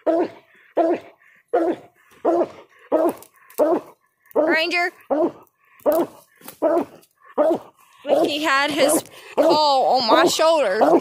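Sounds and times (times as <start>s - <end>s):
dog barking: 0.0s - 4.5s, 5.1s - 11.0s.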